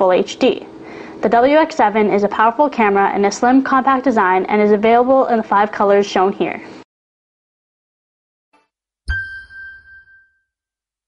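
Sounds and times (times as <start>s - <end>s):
bright electronic chime: 9.1s - 10.5s.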